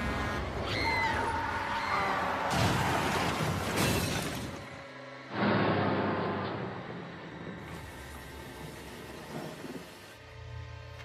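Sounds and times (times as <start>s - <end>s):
eerie music: 0.0s - 11.0s.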